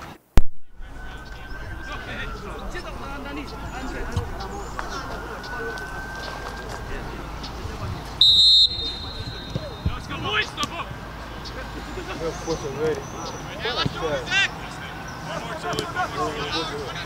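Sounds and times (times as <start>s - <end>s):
referee's whistle blast: 8.2s - 10.0s.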